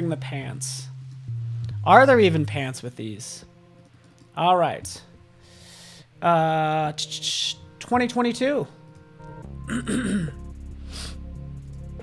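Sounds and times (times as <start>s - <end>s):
quiet background music: 0.0s - 12.0s
man clearing his throat: 9.7s - 10.4s.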